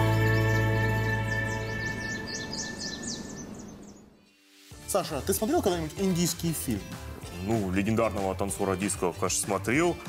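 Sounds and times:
quick high birdsong-like chirps: 0.0s - 4.2s.

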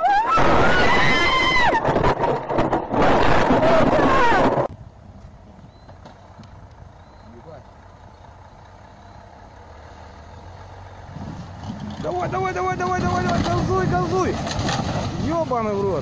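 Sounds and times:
distant diesel truck engine: 4.8s - 16.0s.

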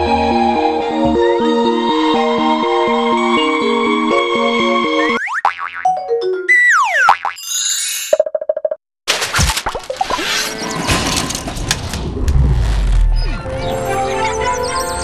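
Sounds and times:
springy boing tones: 5.2s - 6.0s
deep rumble: 11.1s - 13.7s.

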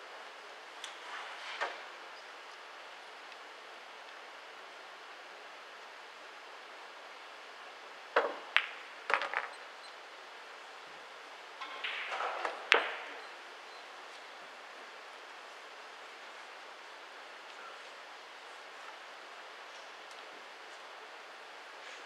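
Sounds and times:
pool balls clacking: 8.2s - 9.7s, 11.6s - 13.2s.

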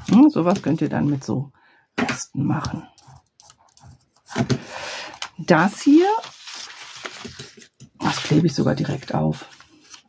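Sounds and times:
paper rustling and sliding: 3.8s - 10.0s.

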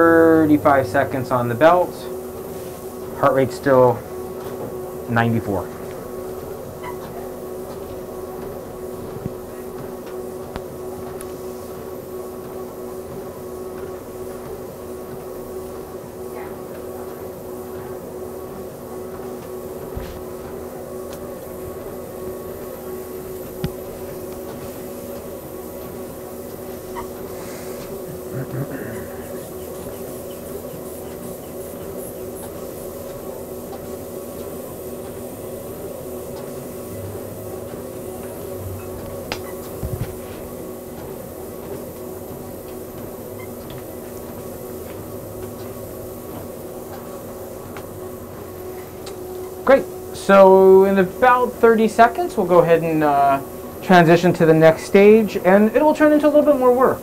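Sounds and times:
treadmill motor humming: 0.0s - 57.0s.

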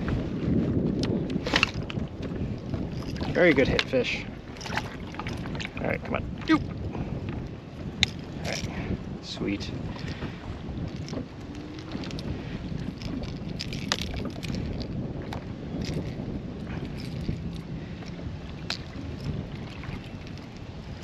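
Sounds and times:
water lapping at hull: 0.0s - 21.0s
wind buffeting microphone: 0.0s - 21.0s
small clicks and splashes: 2.6s - 6.6s, 10.8s - 20.7s.

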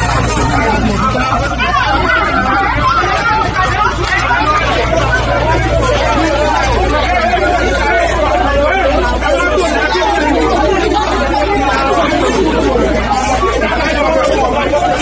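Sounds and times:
crowd babble: 0.0s - 15.0s.

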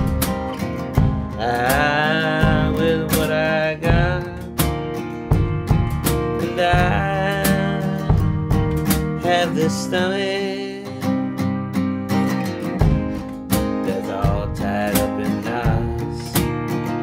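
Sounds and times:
acoustic guitar strumming: 0.0s - 17.0s
man singing: 1.0s - 4.7s, 6.2s - 11.3s, 13.6s - 16.5s.

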